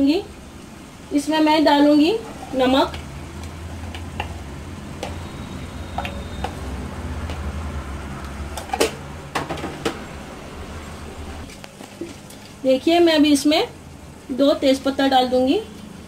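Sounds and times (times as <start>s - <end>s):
spoon tapping steel pot: 5.9s - 6.6s.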